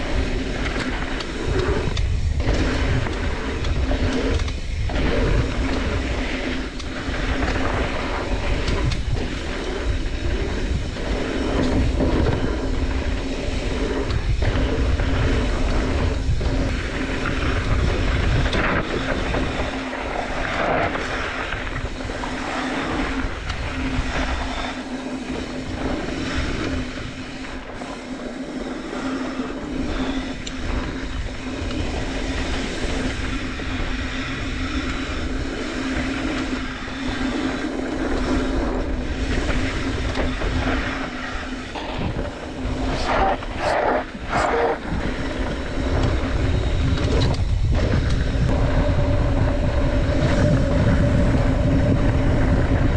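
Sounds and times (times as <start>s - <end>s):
steady hum: 0.0s - 52.9s
wind rushing over microphone: 0.0s - 52.9s.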